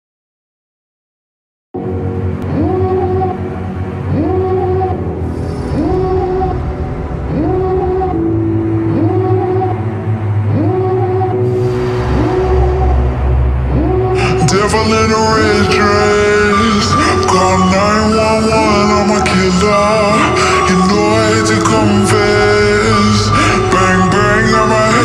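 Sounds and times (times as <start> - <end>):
noisy rising swell: 1.8 - 25.0
steady bass: 1.8 - 25.0
synth riff swooping upward: 1.8 - 25.0.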